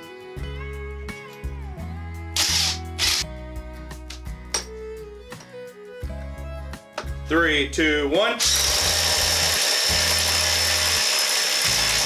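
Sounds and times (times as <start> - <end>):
guitar music with bass line: 0.0 - 7.3.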